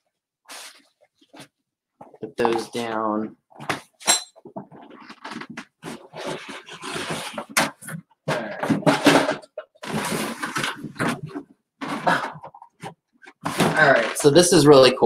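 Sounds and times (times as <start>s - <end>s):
merchandise rustling and knocking: 0.6s - 14.4s.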